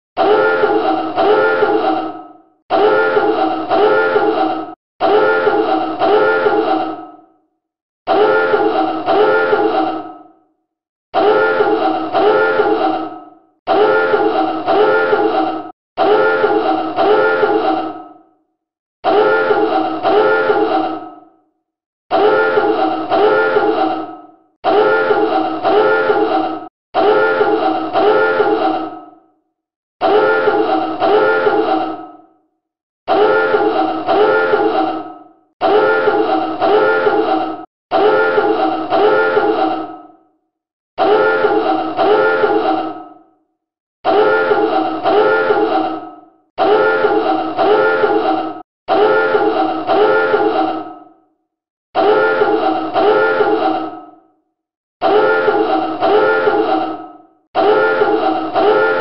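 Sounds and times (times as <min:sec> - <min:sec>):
submarine dive alarm blasts: 0:00.2 - 0:01.8, 0:02.7 - 0:04.4, 0:05.0 - 0:06.6, 0:08.1 - 0:09.7, 0:11.2 - 0:12.7, 0:13.7 - 0:15.4, 0:16.0 - 0:17.6, 0:19.0 - 0:20.6, 0:22.2 - 0:23.7, 0:24.6 - 0:26.2, 0:27.0 - 0:28.5, 0:33.1 - 0:34.7, 0:37.9 - 0:39.4, 0:41.0 - 0:42.5, 0:46.6 - 0:48.2, 0:48.9 - 0:50.4, 0:52.0 - 0:53.5, 0:55.0 - 0:56.6, 0:57.6 - 0:59.0.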